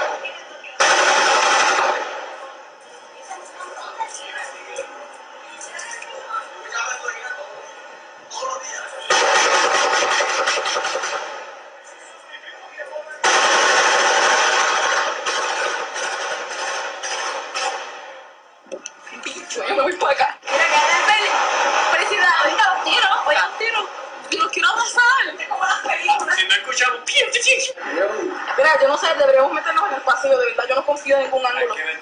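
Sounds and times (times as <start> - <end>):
rapid firecracker bangs: 0.8 - 2.4, 9.1 - 11.6, 13.2 - 18.2.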